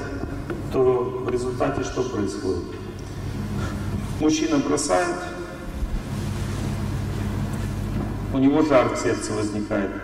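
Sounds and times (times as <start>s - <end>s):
sound system hum: 0.0s - 10.0s.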